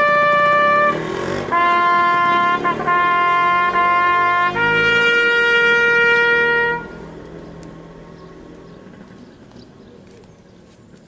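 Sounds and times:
trumpet holding long note: 0.0 - 7.0.

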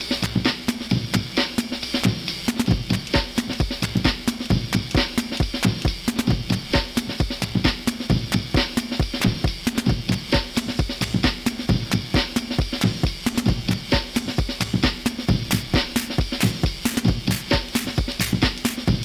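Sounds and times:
electronic drum pattern: 0.0 - 19.0.

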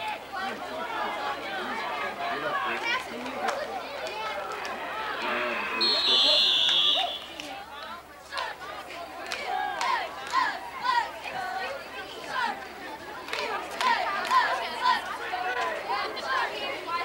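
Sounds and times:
spectators chattering: 0.0 - 17.0
referee's whistle blast: 5.2 - 7.4.

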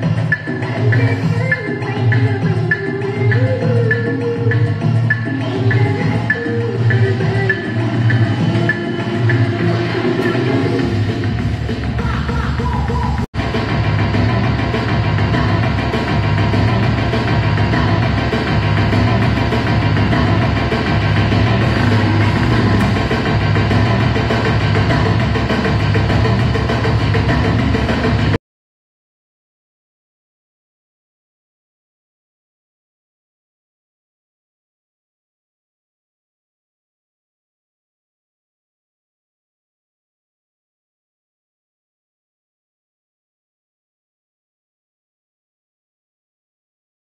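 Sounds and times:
dance music mix: 0.0 - 28.4.

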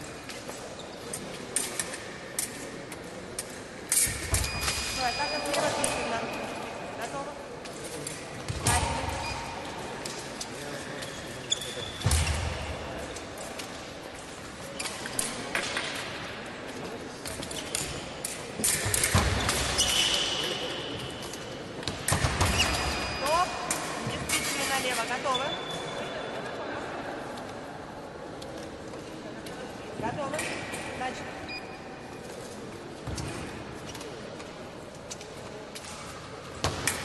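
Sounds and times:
shoe squeaks: 4.0 - 6.5, 10.7 - 12.2, 19.4 - 20.9, 24.3 - 26.2
murmur of voices: 23.2 - 37.0.

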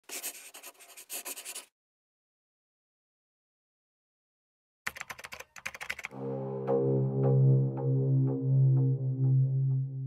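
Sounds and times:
pen scratching on paper: 0.0 - 1.7.

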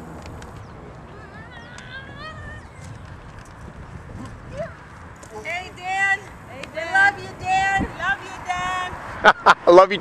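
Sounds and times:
outdoor background noise: 0.0 - 10.0
high-pitched voices calling: 0.7 - 3.4.

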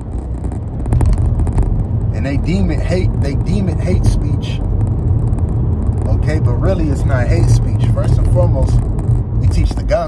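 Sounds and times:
car interior road rumble: 0.0 - 10.0.

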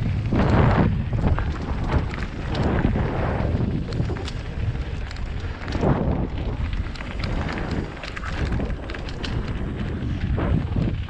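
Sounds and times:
bike tyres clicking and rattling: 0.0 - 11.0
heavy low rumble: 0.0 - 11.0
wind rushing over microphone: 0.0 - 11.0.

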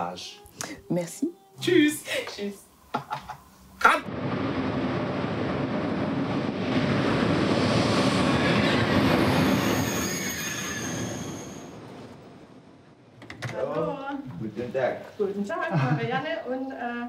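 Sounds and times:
high wheel squeals: 8.6 - 12.0.

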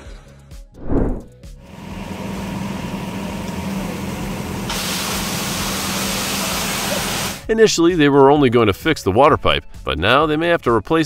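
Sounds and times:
brief whoosh: 0.8 - 1.3
water spraying under pressure: 3.1 - 7.4.

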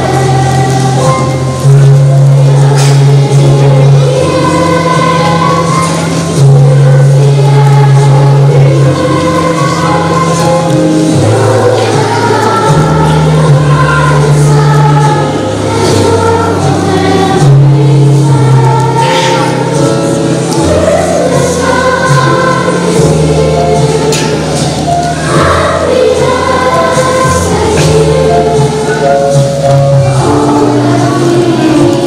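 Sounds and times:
children's choir singing: 0.0 - 32.0.

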